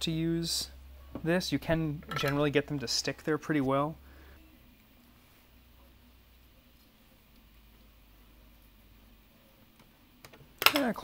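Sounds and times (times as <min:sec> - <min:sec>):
man talking: 0:00.0 - 0:04.0.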